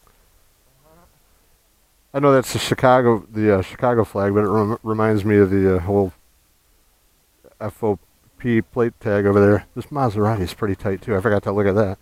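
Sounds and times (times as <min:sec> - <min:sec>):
faint voice-like call: 0:00.7 - 0:01.3.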